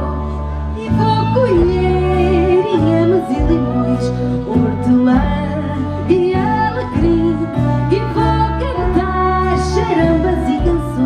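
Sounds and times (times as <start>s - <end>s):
live folk band playing: 0.0s - 11.0s.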